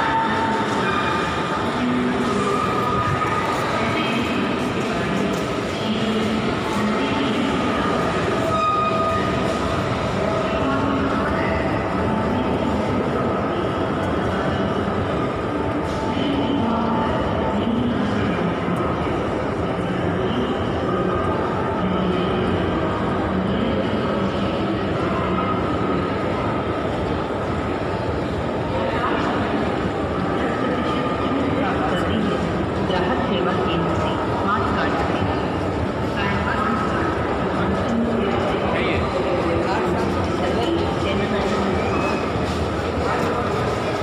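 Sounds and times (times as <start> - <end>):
crowd voices: 0.0 - 44.0.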